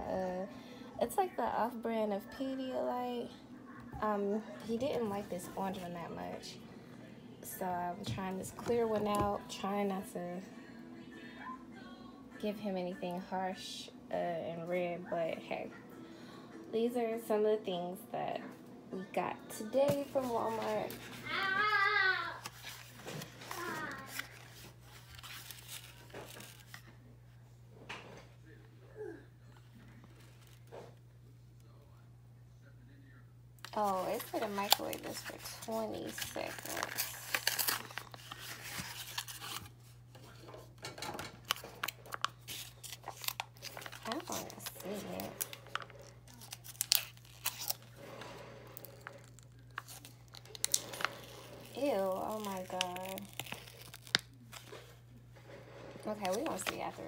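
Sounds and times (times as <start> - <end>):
cardboard packaging rustling: 19.7 - 26.9, 33.6 - 40.8, 41.4 - 55.2, 56.0 - 57.0.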